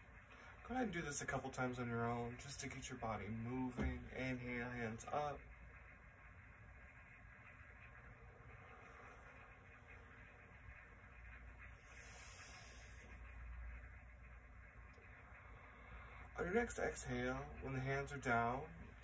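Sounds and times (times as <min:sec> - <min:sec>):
faint low rumble: 0:00.0 - 0:19.0
soft hiss: 0:00.0 - 0:19.0.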